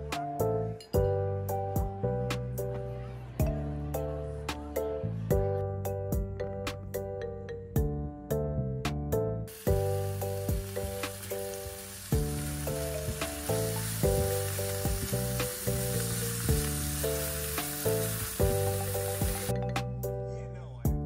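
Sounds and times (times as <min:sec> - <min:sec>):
background music picked melody: 0:00.0 - 0:21.0
food sizzling in frying pan: 0:09.5 - 0:19.5.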